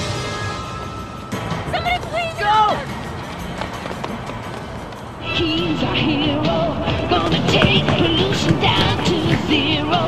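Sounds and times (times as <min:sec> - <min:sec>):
background music: 0:00.0 - 0:10.0
street noise: 0:00.0 - 0:10.0.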